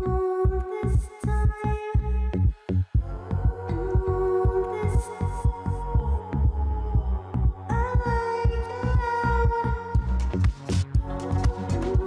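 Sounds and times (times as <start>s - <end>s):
electronic music: 3.0s - 12.0s.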